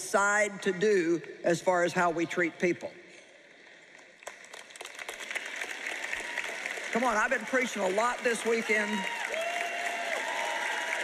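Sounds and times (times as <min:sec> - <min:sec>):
audience applause: 0:04.2 - 0:11.0.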